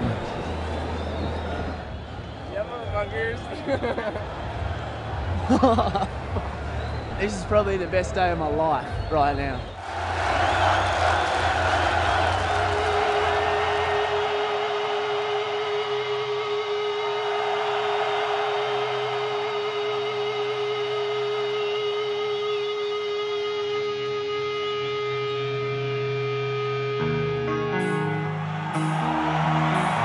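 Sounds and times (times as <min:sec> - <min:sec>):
crowd cheering and whooping: 0:00.0 - 0:07.1, 0:09.8 - 0:22.7, 0:27.1 - 0:30.0
electric guitar note ringing: 0:13.8 - 0:30.0.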